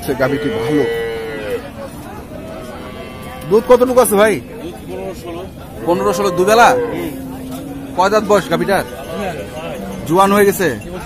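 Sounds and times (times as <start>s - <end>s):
cow mooing: 0.0s - 1.7s, 2.3s - 4.3s, 5.7s - 10.5s.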